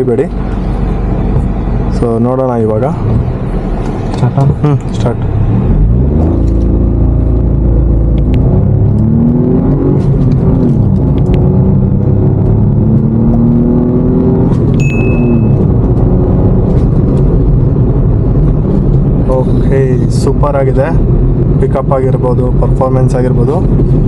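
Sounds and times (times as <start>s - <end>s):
car engine accelerating: 0.0s - 24.0s.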